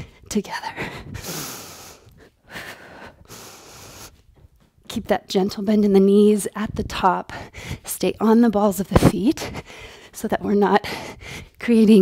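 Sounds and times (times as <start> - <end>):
woman breathing hard: 0.0 - 4.4, 7.3 - 7.9, 9.4 - 10.2, 10.8 - 11.6.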